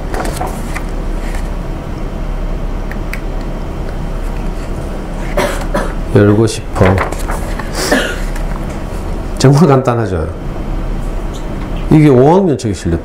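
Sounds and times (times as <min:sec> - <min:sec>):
low mains hum: 0:00.0 - 0:13.0
breathy burst: 0:07.6 - 0:08.3.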